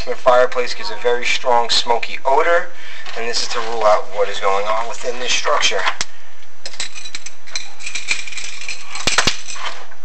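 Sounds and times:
camera scraping inside chimney flue: 0.0 - 6.1.

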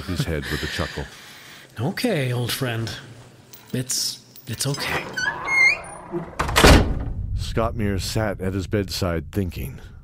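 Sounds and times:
heavy thud with noise rush: 6.6 - 8.0
low rumble: 6.7 - 10.0.

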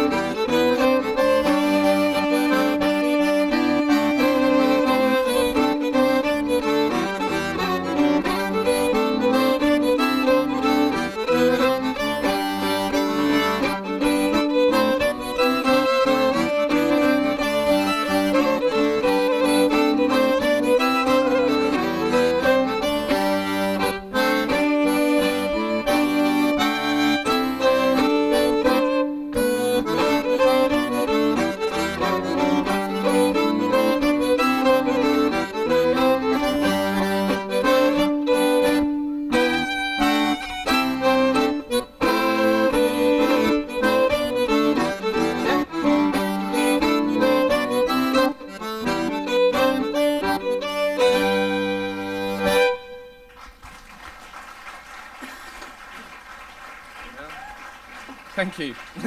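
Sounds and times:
fiddle: 0.0 - 53.7
button accordion: 0.0 - 53.8.

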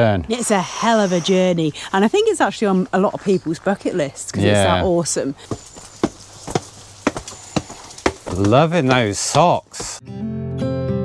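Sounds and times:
footsteps on stone steps: 4.6 - 10.0.

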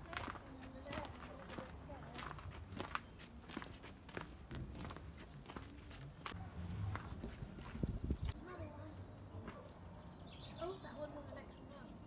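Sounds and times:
footsteps thudding: 3.6 - 5.7.

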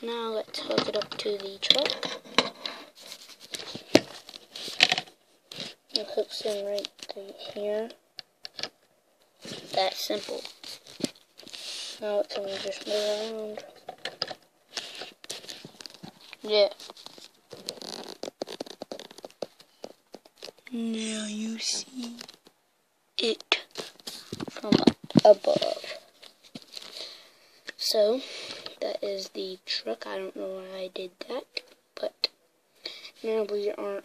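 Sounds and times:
plastic toy bricks rustling and knocking: 0.3 - 8.8, 9.4 - 20.6, 23.6 - 27.0.

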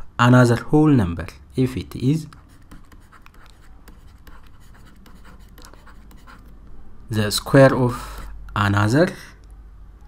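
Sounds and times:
stylus scratching on tablet: 1.9 - 6.6.

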